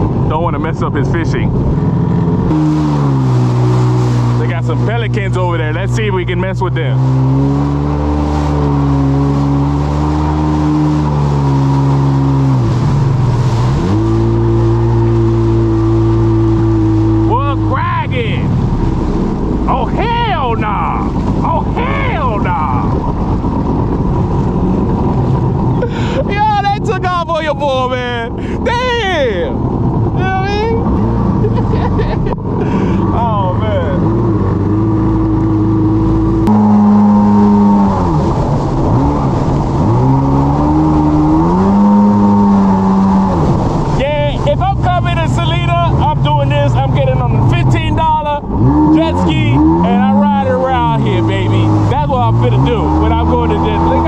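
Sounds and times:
jet ski engine running: 0.0 - 54.0
wind noise: 7.0 - 54.0.

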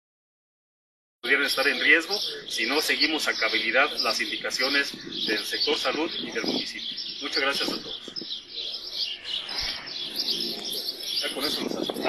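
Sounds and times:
birds chirping: 1.2 - 12.0.

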